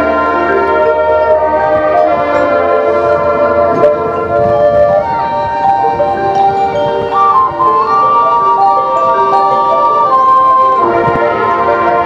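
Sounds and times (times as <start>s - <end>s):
marching band playing slow melody: 0.0s - 12.0s.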